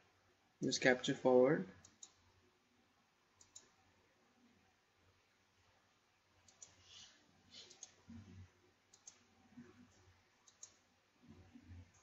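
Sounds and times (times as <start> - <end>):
computer mouse clicks: 1.8 - 2.2, 3.4 - 3.8, 6.4 - 6.8, 7.6 - 12.0.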